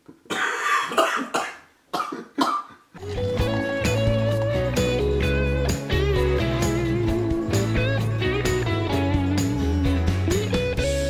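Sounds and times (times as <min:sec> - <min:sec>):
guitar music: 0:03.0 - 0:11.0
steady bass: 0:03.1 - 0:11.0.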